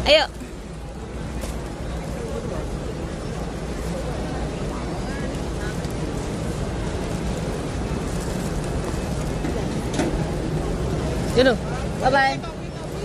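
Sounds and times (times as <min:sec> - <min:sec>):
crowd voices: 0:00.0 - 0:13.0.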